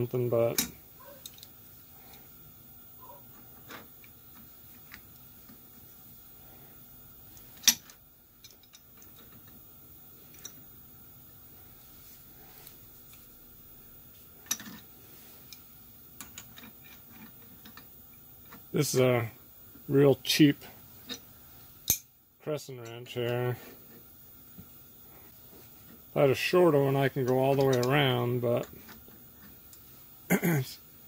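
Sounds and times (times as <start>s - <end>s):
faint steady hum: 0.0s - 31.0s
small metal clicks: 0.5s - 2.2s, 7.3s - 9.6s, 10.2s - 10.6s, 14.4s - 18.7s, 21.8s - 22.1s, 27.2s - 28.0s.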